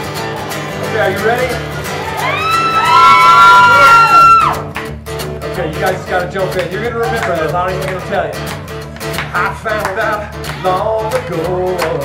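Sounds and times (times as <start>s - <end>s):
acoustic guitar: 0.0s - 12.0s
high held vocal whoops: 1.8s - 4.7s
sharp guitar strums: 3.6s - 12.0s.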